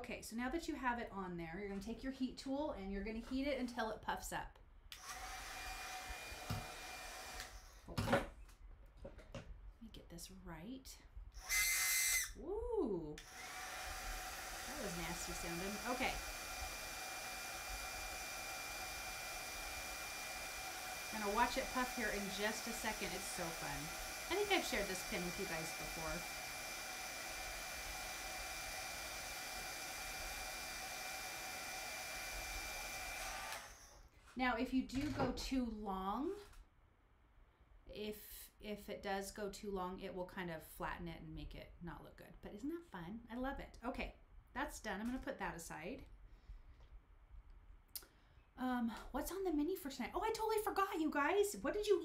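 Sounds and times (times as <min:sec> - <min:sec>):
heat gun blowing with faint whine: 0:11.3 - 0:34.1.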